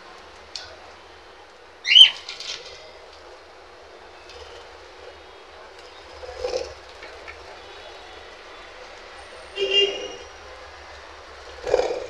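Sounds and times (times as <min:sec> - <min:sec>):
budgerigar loud call: 0:01.8 - 0:02.2
flock of birds chattering: 0:01.8 - 0:03.3, 0:03.9 - 0:10.8.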